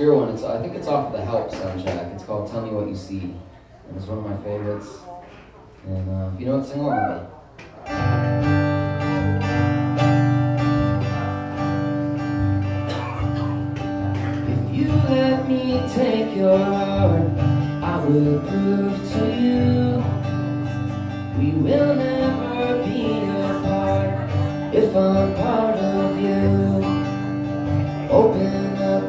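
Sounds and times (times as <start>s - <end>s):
acoustic guitar: 0.0s - 29.0s
man singing: 14.2s - 29.0s.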